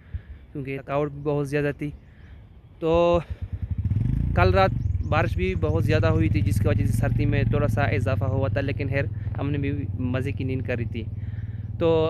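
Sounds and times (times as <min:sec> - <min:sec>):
vehicle engine idling: 0:01.8 - 0:12.0.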